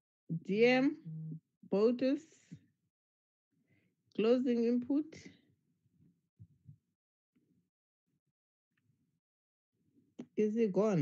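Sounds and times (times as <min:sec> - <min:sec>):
faint low thumps: 0:01.0 - 0:01.4.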